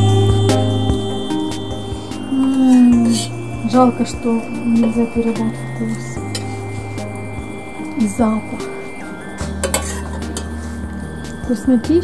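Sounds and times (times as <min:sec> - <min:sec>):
metal ladle clinking against pot: 0:09.5 - 0:10.6.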